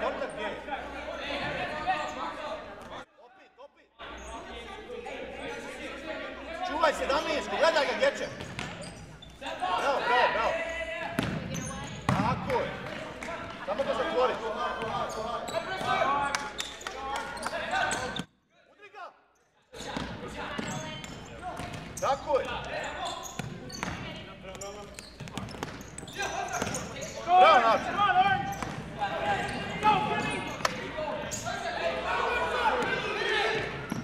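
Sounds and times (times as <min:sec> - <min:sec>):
players and spectators shouting: 0:09.4 - 0:11.7, 0:26.0 - 0:34.0
loud shout: 0:27.2 - 0:33.8.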